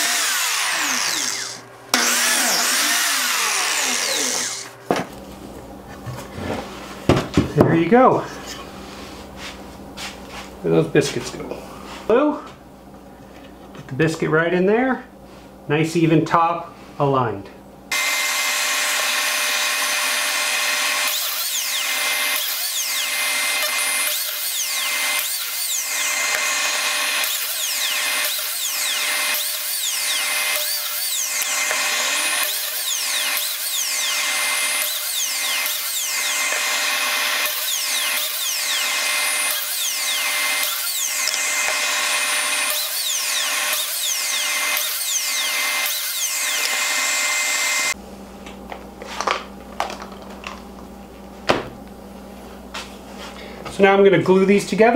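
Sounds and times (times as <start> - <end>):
biscuit joiner high whine: 0.0 - 5.2, 17.9 - 48.0.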